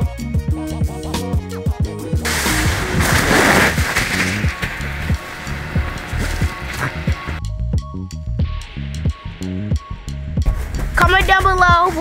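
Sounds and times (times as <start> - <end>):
music with steady beat: 0.0 - 12.0
cardboard box sliding on snow: 2.3 - 7.4.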